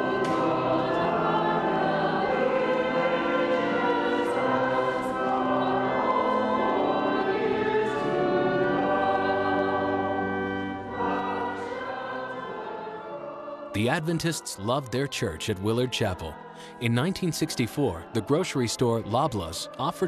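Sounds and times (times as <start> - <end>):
congregation singing a hymn: 0.0 - 20.0.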